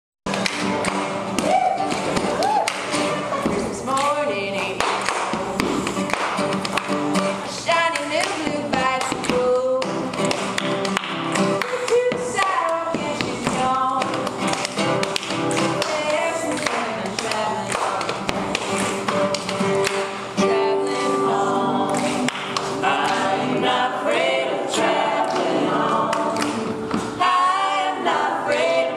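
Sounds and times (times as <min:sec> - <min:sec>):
sharp taps keeping the beat: 0:00.3 - 0:21.1
acoustic guitar: 0:00.3 - 0:28.9
woman singing: 0:03.2 - 0:06.0, 0:07.4 - 0:10.3, 0:11.6 - 0:14.4, 0:15.7 - 0:18.6, 0:20.4 - 0:22.4.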